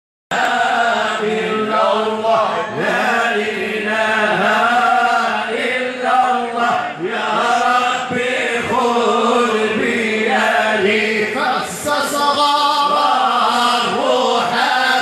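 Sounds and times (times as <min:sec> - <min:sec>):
men chanting devotional songs: 0:00.3 - 0:15.0.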